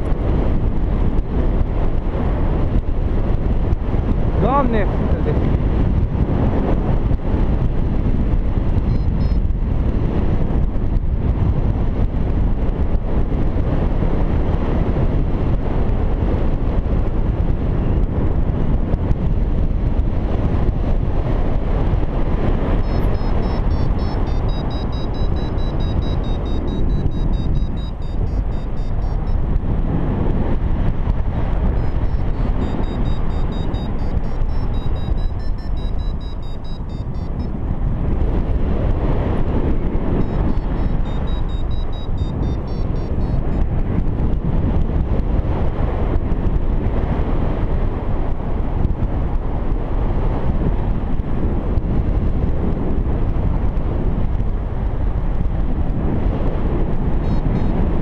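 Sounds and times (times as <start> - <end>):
wind rushing over microphone: 0.0 - 58.0
variometer high-pitched beeps: 8.8 - 9.5, 22.8 - 29.6, 31.6 - 37.6, 40.2 - 43.7, 57.2 - 57.8.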